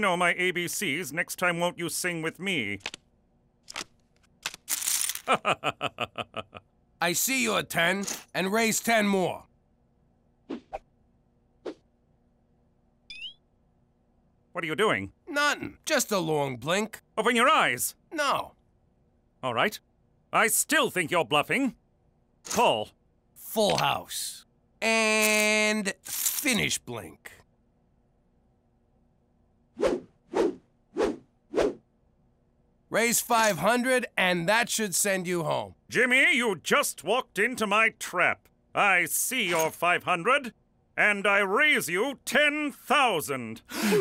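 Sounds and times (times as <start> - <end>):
short rising chirp: 13.1 - 13.4.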